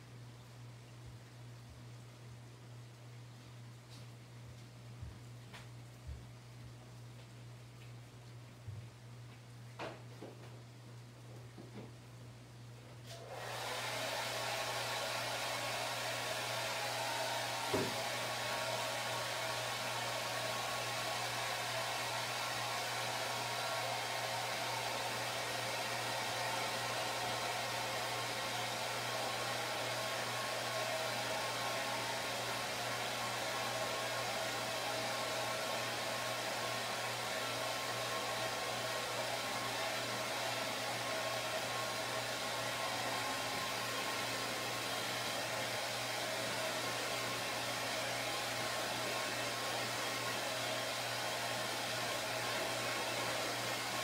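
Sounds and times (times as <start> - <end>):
hair dryer running: 13.1 - 54.0.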